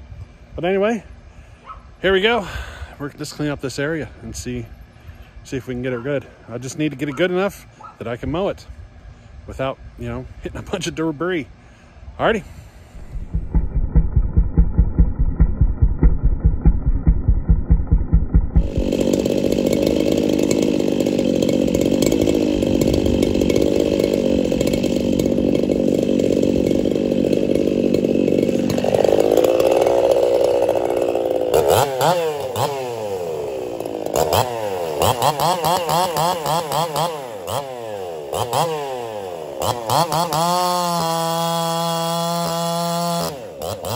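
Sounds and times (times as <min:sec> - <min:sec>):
chainsaw cutting log: 0:12.9 - 0:43.9
muffled pulsing sound: 0:13.0 - 0:19.0
chainsaw running and revving: 0:13.0 - 0:43.9.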